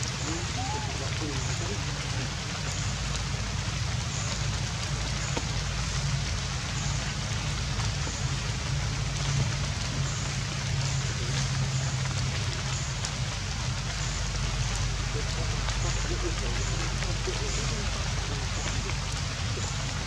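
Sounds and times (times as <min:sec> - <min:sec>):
constant low hum: 0:00.0 - 0:20.0
steady rain falling: 0:00.0 - 0:20.0.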